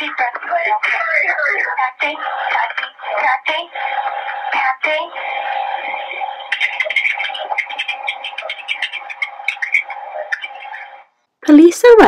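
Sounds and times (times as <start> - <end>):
muffled crackling: 0.0 - 11.1
phone line hiss and hum: 0.0 - 11.2.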